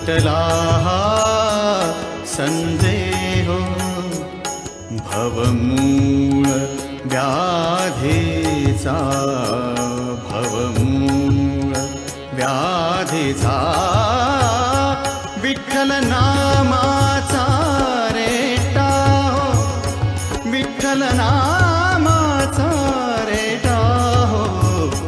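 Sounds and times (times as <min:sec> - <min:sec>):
percussion beat: 0:00.0 - 0:25.0
person singing devotional song: 0:00.0 - 0:25.0.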